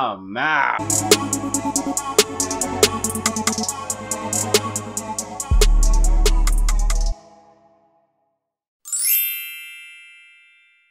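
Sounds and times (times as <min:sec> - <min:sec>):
bright bell-like ding: 0:09.1 - 0:10.9.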